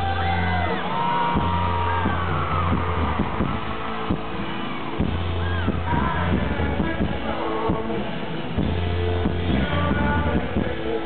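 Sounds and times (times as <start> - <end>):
audience whooping and yelling: 0.0 - 6.8
acoustic guitar: 0.0 - 11.0
live band music: 0.0 - 11.0
low bass notes: 0.0 - 11.0.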